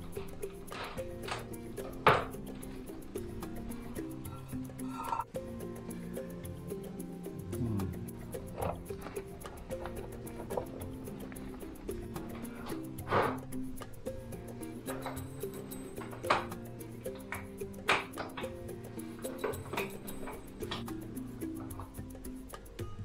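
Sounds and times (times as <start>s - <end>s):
background music with low notes: 0.0s - 23.0s.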